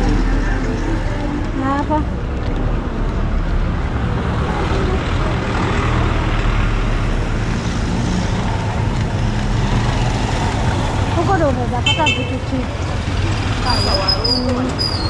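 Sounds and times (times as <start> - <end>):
cars and motorbikes passing: 0.0 - 15.0.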